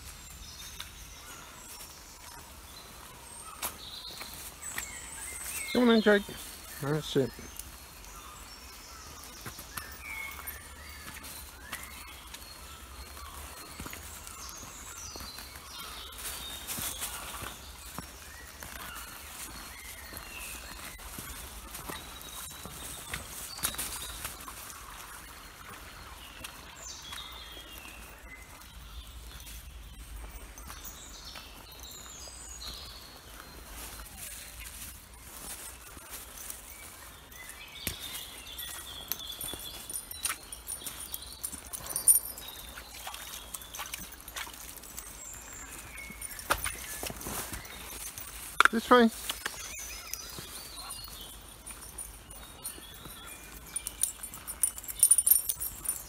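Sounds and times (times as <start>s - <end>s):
birds singing: 0.0s - 56.0s
footsteps on muddy path: 0.0s - 56.0s.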